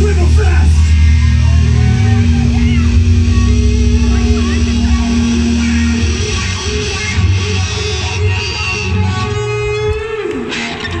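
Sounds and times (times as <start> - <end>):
bass: 0.0 - 11.0
electric guitars: 0.0 - 11.0
live rock band playing: 0.0 - 11.0.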